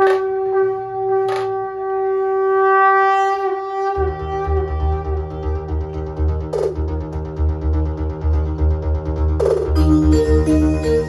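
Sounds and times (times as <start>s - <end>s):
heavy pulsing bass beat: 3.4s - 11.0s.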